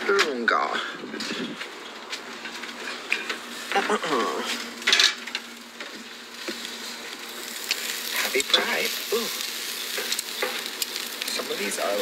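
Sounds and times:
food sizzling on a grill: 0:01.4 - 0:12.0.

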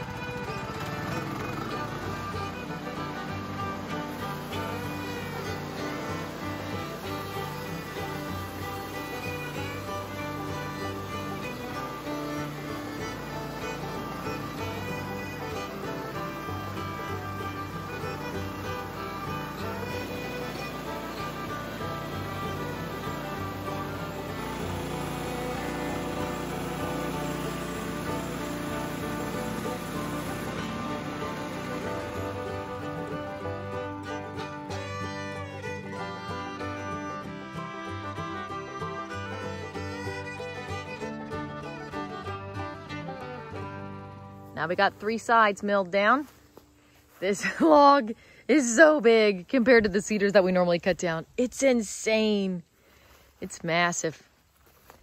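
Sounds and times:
instrumental music with fiddle: 0:00.0 - 0:55.0.

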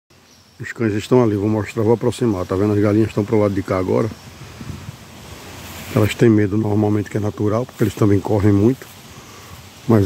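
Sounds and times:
wind blowing across microphone: 0:01.1 - 0:10.0.

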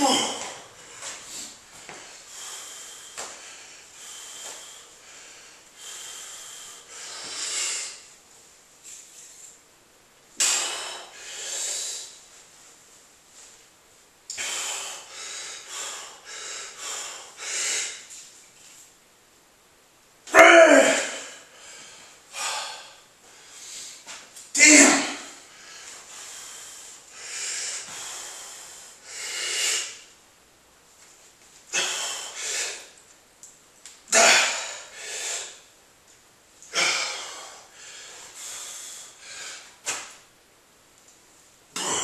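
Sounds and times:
man breathing heavily: 0:00.0 - 0:08.2, 0:10.4 - 0:12.3, 0:14.3 - 0:18.2, 0:20.6 - 0:30.1, 0:31.7 - 0:33.0, 0:34.1 - 0:35.7, 0:36.6 - 0:39.9.

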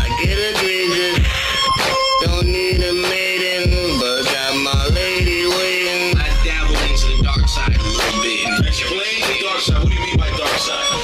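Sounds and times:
rapping over a beat: 0:00.0 - 0:11.0
deep bass kicks: 0:06.2 - 0:08.8.

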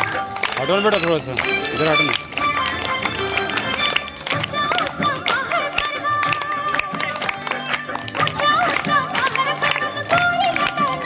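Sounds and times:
drum beats: 0:00.0 - 0:11.0.

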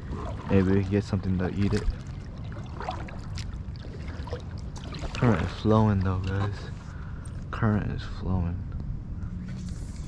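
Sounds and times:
water lapping against kayak hull: 0:00.0 - 0:06.8.

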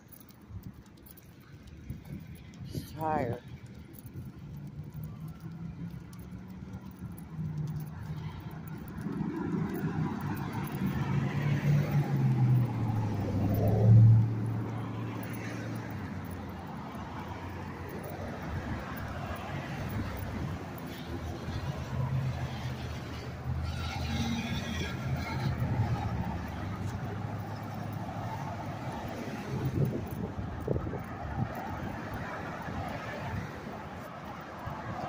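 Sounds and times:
vehicle engine passing by: 0:07.6 - 0:16.4.

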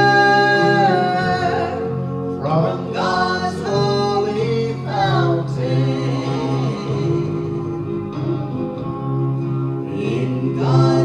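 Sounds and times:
woman and man singing gospel: 0:00.0 - 0:08.1, 0:09.8 - 0:11.0.

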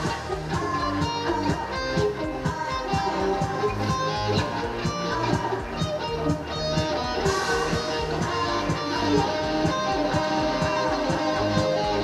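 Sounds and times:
electric guitar: 0:00.0 - 0:12.0
pop backing track with drum beat: 0:00.0 - 0:12.0.

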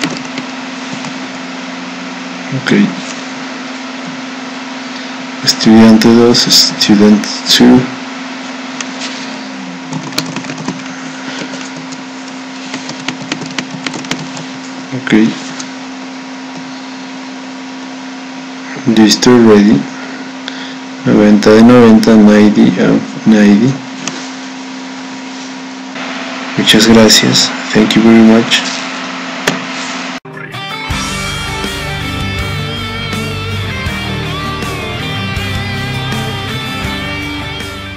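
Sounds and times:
steady low hum: 0:00.0 - 0:37.9.

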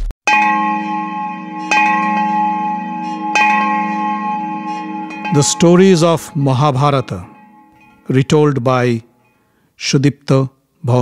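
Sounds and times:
bell-like struck tones: 0:00.3 - 0:09.5.

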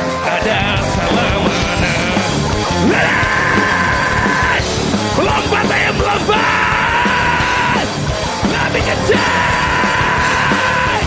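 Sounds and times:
bass guitar: 0:00.0 - 0:11.0
drum kit: 0:00.0 - 0:11.0
live band playing: 0:00.0 - 0:11.0
singer yelling: 0:00.4 - 0:11.0.

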